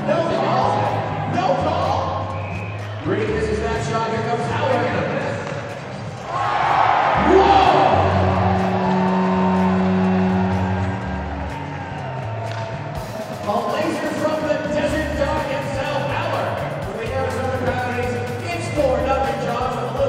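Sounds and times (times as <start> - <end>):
arena crowd cheering: 0.0 - 20.0
arena music: 0.0 - 20.0.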